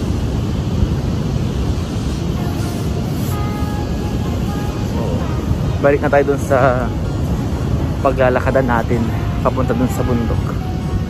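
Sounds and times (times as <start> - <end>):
ocean surf breaking: 0.0 - 11.0
wind buffeting microphone: 0.0 - 11.0.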